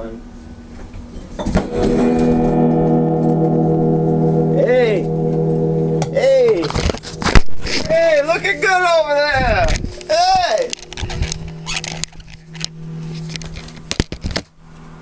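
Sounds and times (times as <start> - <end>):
organ-like held chord: 1.7 - 14.4.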